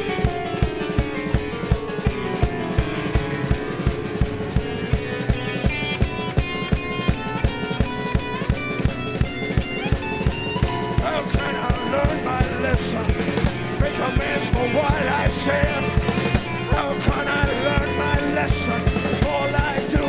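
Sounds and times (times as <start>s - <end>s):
blues band playing: 0.0s - 20.0s
guitar picking melody: 0.0s - 20.0s.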